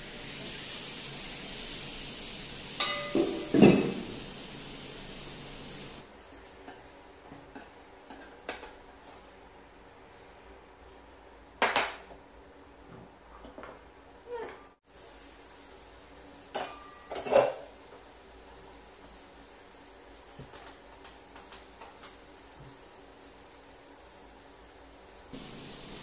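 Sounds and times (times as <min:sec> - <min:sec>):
steady hiss: 0:00.0 - 0:07.4, 0:14.8 - 0:26.0.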